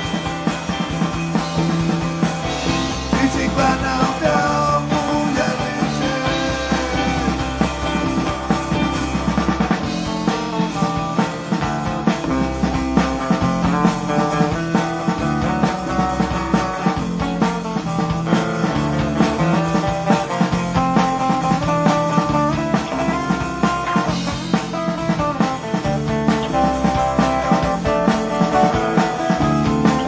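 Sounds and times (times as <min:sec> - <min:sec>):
acoustic guitar: 0:00.0 - 0:30.0
bass guitar: 0:00.0 - 0:30.0
drum kit: 0:00.0 - 0:30.0.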